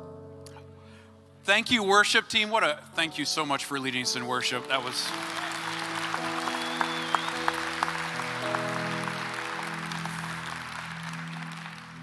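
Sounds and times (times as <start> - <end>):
congregation applauding: 4.1 - 12.0.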